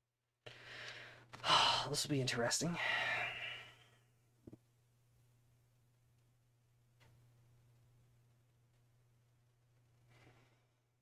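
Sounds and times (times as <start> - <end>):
faint electrical hum: 0.5 - 11.0.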